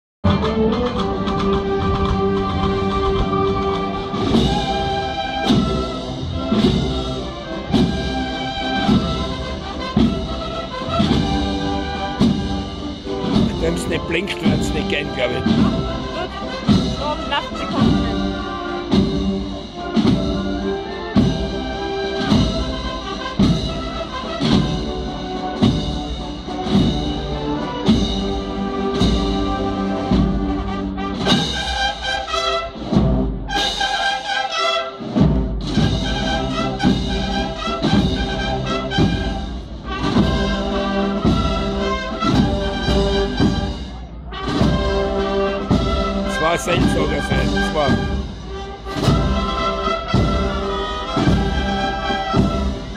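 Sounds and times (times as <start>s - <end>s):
brass band playing: 0.3s - 52.9s
drums keeping steady beat: 0.3s - 52.9s.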